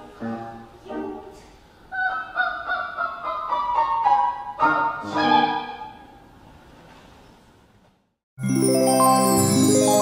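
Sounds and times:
piano accompaniment: 8.4s - 10.0s.

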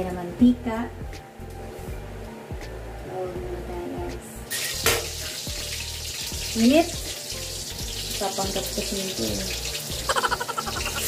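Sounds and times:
background music: 0.0s - 11.0s
food hissing in hot oil: 4.5s - 11.0s
sharp pop of oil: 4.8s - 5.2s.

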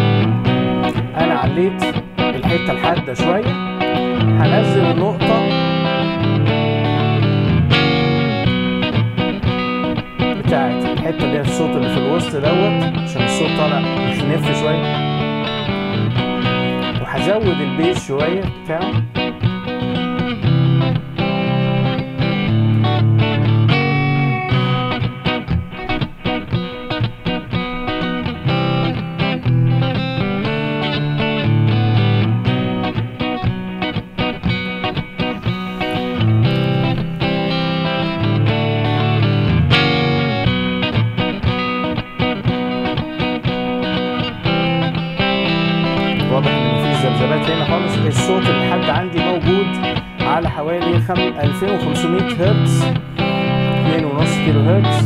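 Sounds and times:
guitar track playing: 0.0s - 55.0s.

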